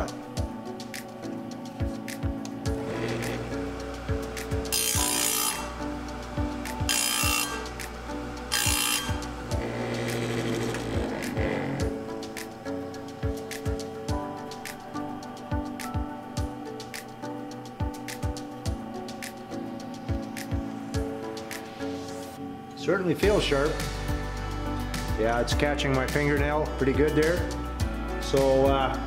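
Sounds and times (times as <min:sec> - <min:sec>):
background music: 0:00.0 - 0:29.0
sharpener motor running: 0:02.8 - 0:11.8.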